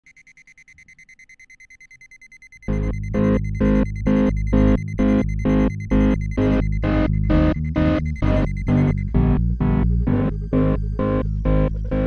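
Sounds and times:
rapid electronic beeping: 0.0s - 10.8s.

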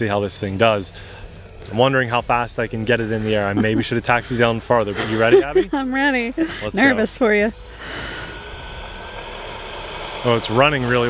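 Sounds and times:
electric jet fan whine and rush: 0.0s - 11.0s.

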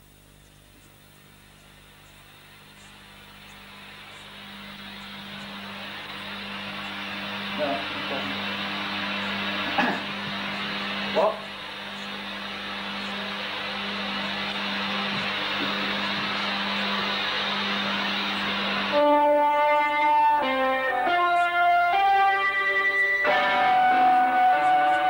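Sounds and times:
steady hiss and hum: 0.0s - 25.0s
electric guitar single notes: 5.2s - 25.0s.

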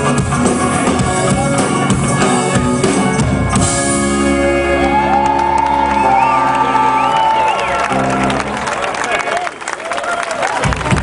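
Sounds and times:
crowd cheering and whistling: 4.2s - 11.0s
applause: 4.8s - 11.0s.

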